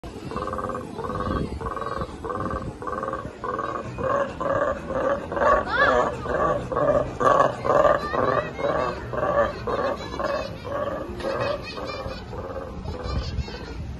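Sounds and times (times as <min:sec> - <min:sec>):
monkeys rhythmic roaring call: 0:00.0 - 0:13.5.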